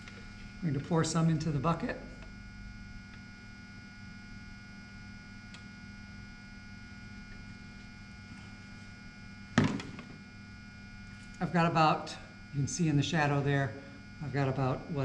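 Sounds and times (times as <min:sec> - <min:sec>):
steady electrical hum: 0:00.0 - 0:15.0
metal can thunk on wood: 0:09.6 - 0:10.0.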